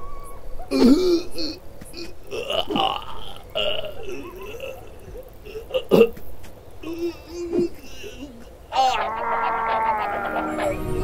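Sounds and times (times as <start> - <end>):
cartoon gibberish voice: 8.7 - 11.0.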